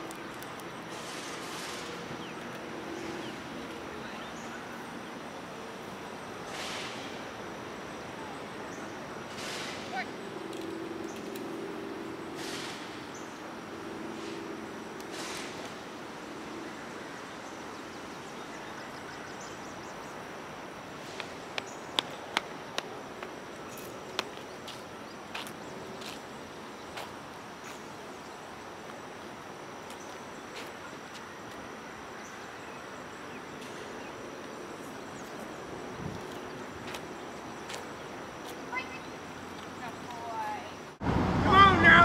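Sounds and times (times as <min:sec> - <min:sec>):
outdoor background noise: 0:00.0 - 0:42.0.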